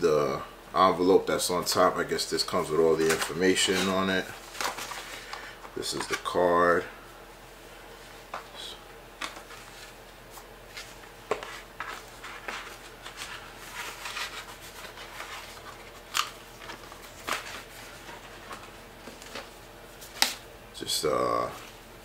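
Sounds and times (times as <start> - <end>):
paper rustling: 3.0 - 6.4, 9.2 - 20.4.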